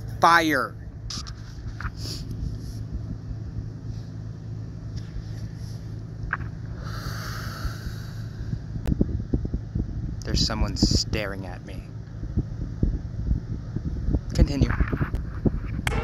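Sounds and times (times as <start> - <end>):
low outdoor rumble: 0.0 - 16.0
wind buffeting microphone: 0.8 - 16.0.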